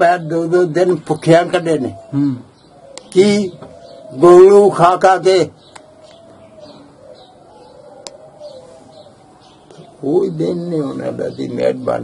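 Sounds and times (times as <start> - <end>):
dove cooing: 0.0 - 12.0
small birds chirping: 0.0 - 12.0.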